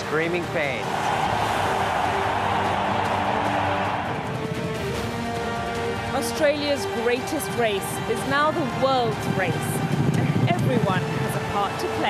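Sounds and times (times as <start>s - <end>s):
crowd cheering: 0.0s - 9.2s
background music with held notes: 0.0s - 12.0s.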